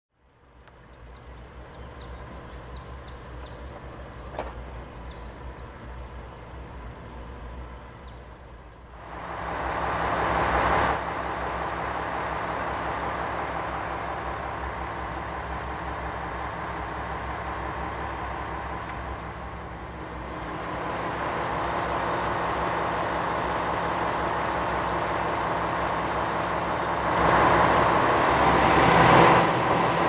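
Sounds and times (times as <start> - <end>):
low engine hum: 0.1 - 30.0
small bird chirping: 0.8 - 6.5
vehicle rushing past: 26.8 - 30.0.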